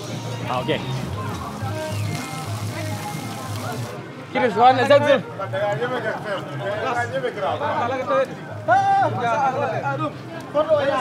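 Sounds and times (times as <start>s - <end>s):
music with pulsing bass beat: 0.0s - 3.9s
faint background voices: 0.0s - 11.0s.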